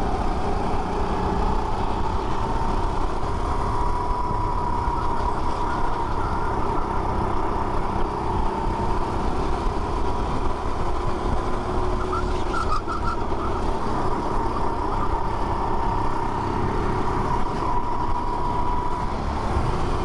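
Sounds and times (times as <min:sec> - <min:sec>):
go-kart engine racing: 0:00.0 - 0:20.0.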